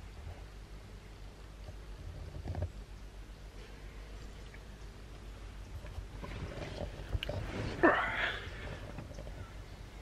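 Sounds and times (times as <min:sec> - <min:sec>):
small knocks and rustles: 0:01.6 - 0:03.0, 0:03.6 - 0:07.8, 0:08.5 - 0:09.7.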